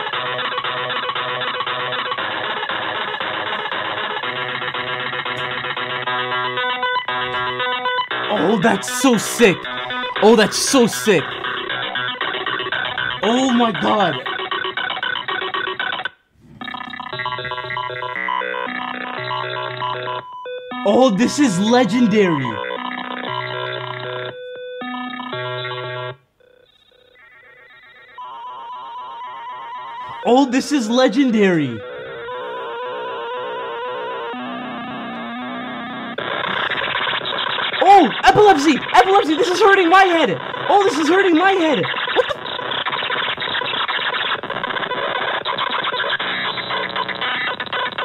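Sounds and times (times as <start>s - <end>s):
chiptune-like beeps: 0.0s - 16.0s, 16.6s - 24.4s, 28.2s - 48.0s
harsh squealing electronic noise: 0.0s - 20.1s, 26.7s - 48.0s
electronic beeping tones: 16.6s - 26.2s.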